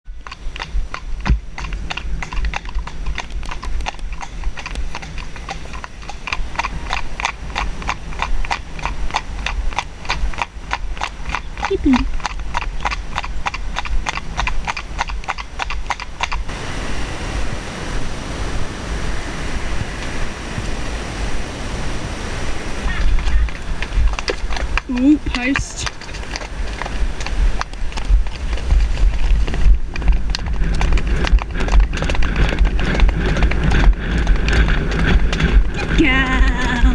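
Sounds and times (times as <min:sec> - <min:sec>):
hooves clip-clopping on road: 0:00.1 - 0:16.7, 0:19.6 - 0:36.9
steady rushing noise: 0:00.1 - 0:36.9.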